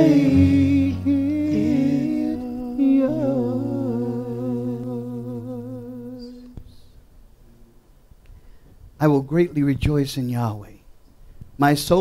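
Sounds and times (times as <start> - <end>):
person singing with vibrato: 0.0 - 7.0.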